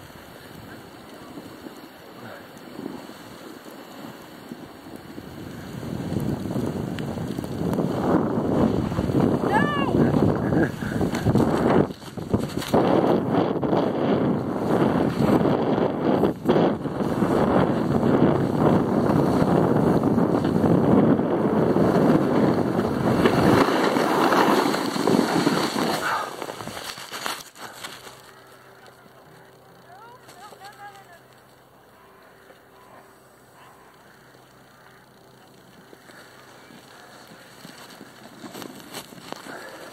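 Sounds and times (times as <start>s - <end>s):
wind on microphone: 0.0s - 26.9s
snow scraping under skis: 0.1s - 28.3s, 36.0s - 39.9s.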